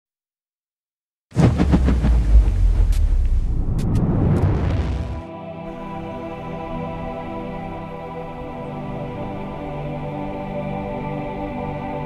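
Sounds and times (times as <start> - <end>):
deep boom rumble with hiss: 1.4 - 5.3.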